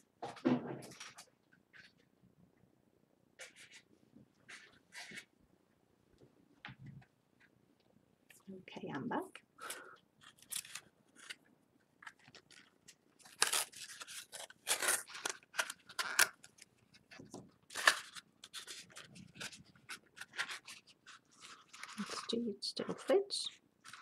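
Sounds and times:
paper and tape tearing: 0:10.2 - 0:11.4, 0:12.1 - 0:16.6, 0:17.7 - 0:22.4.

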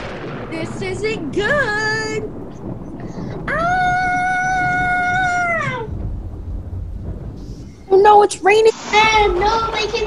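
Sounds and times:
low rumble: 0:00.0 - 0:10.0
child crying out: 0:03.5 - 0:05.9.

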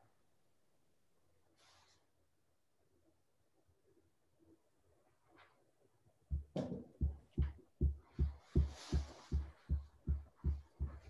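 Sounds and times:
low muffled thumps: 0:06.3 - 0:11.0.

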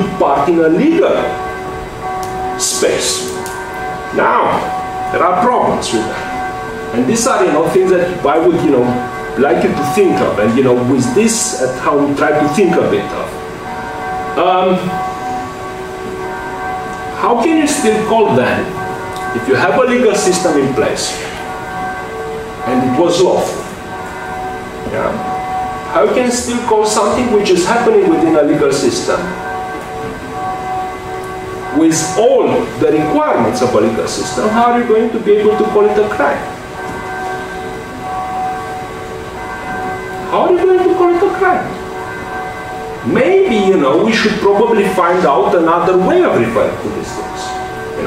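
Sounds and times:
steady hum of held tones: 0:00.0 - 0:48.0.

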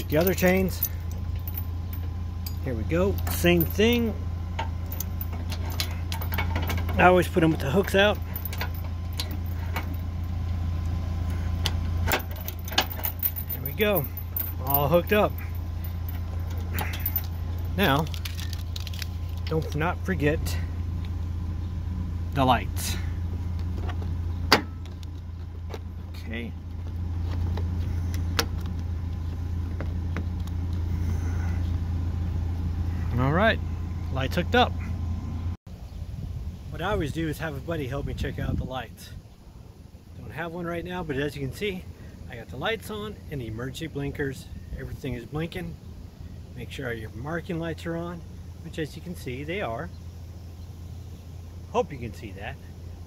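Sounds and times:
metal chain links clinking: 0:00.0 - 0:10.4, 0:12.0 - 0:19.8
steady low hum: 0:00.0 - 0:53.0.

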